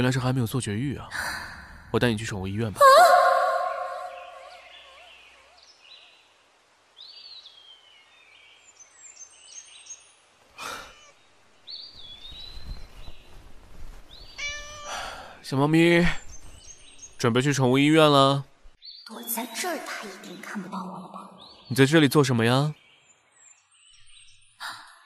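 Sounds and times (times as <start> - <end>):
birds chirping: 0.0 - 25.0
long loud cry: 2.8 - 5.0.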